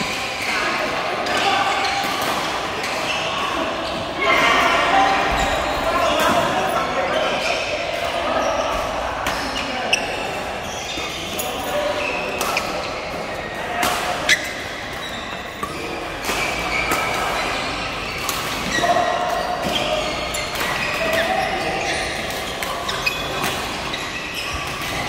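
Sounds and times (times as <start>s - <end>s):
players chattering and calling: 0.0s - 25.0s.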